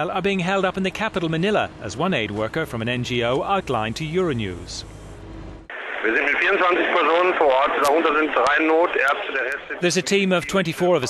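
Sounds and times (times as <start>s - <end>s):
man speaking over telephone: 5.8s - 11.0s.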